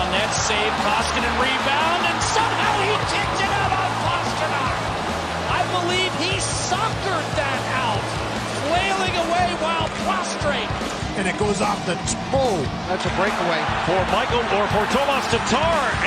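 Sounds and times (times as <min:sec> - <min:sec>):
voices: 0:00.0 - 0:04.8
low music: 0:00.0 - 0:16.0
hockey sticks and puck clacking: 0:09.7 - 0:10.2.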